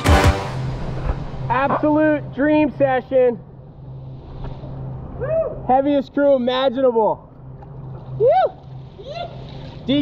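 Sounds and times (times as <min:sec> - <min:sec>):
steady low hum: 0:00.3 - 0:09.2
person whooping: 0:05.2 - 0:05.6, 0:08.2 - 0:09.4.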